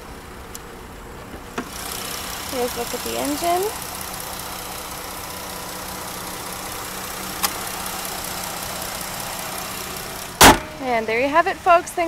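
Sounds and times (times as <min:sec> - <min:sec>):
car engine idling: 0:00.0 - 0:12.0
hood slamming shut: 0:01.2 - 0:01.8, 0:10.4 - 0:10.8.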